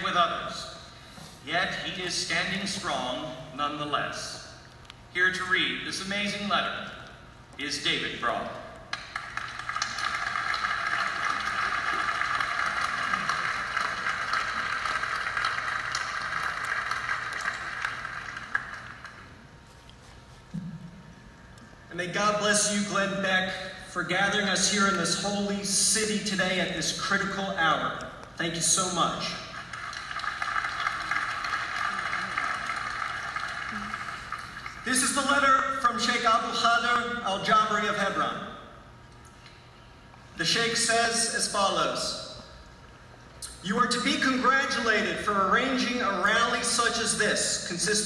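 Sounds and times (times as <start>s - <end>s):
audience applauding: 8.9s - 19.4s, 29.5s - 34.9s.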